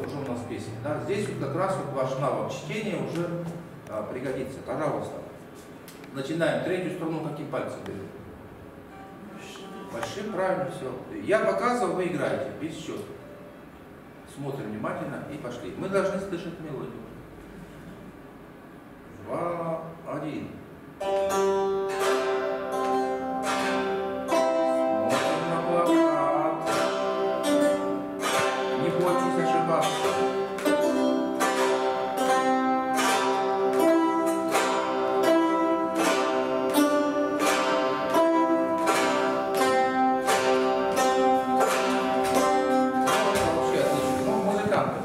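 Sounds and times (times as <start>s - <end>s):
plucked board zithers melody: 8.8s - 10.4s, 21.0s - 45.0s.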